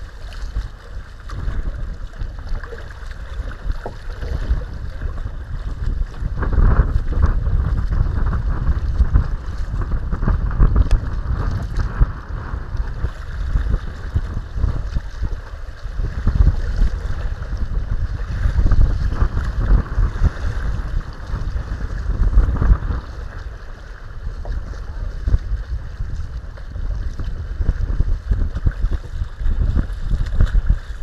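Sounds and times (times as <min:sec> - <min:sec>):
water lapping against hull: 0:00.0 - 0:31.0
wind buffeting microphone: 0:00.0 - 0:31.0.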